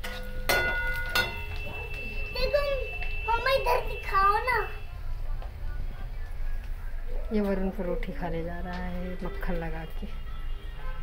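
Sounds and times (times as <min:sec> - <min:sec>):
metal utensil struck and ringing: 0:00.0 - 0:03.0.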